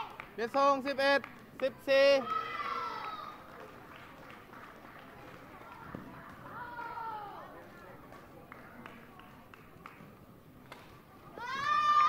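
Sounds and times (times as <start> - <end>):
girl shouting: 2.2 - 3.2, 11.3 - 12.0.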